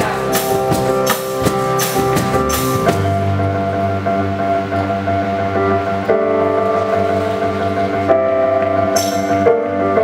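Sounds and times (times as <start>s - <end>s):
held keyboard chords: 0.0s - 10.0s.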